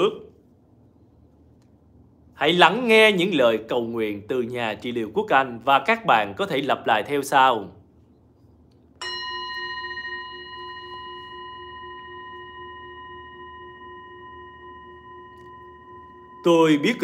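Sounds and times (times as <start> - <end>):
singing bowl ringing: 9.0 - 17.0.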